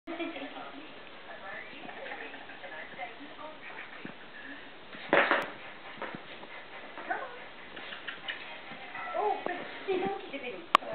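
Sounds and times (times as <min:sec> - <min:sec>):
puppy whining: 0:07.7 - 0:09.5.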